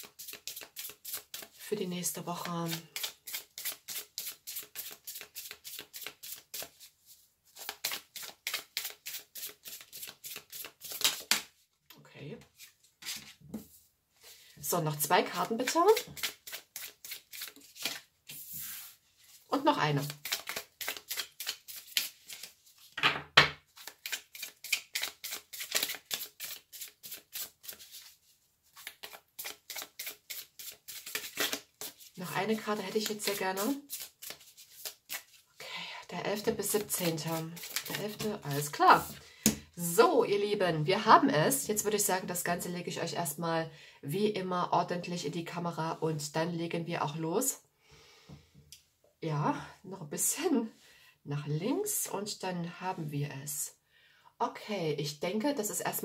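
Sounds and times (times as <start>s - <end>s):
cards being shuffled: 0.0s - 1.6s, 2.7s - 6.9s, 7.5s - 11.5s, 16.0s - 19.4s, 20.0s - 23.0s, 23.7s - 32.2s, 32.8s - 35.4s, 36.7s - 39.6s.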